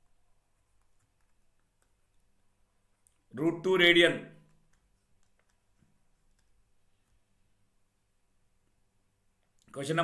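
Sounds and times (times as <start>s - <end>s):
man speaking: 3.3s - 4.4s, 9.7s - 10.0s
stylus clicks on tablet: 4.4s - 6.7s.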